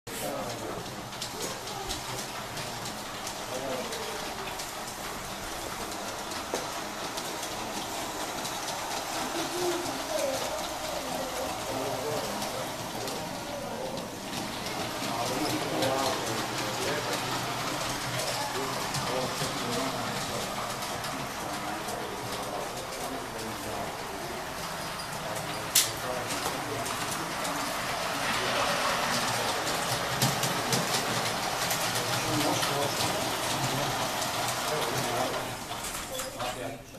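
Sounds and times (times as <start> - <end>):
model train rattling on track: 0.1 - 36.7
faint voices: 0.1 - 36.9
wheels clicking on rails: 0.1 - 36.9.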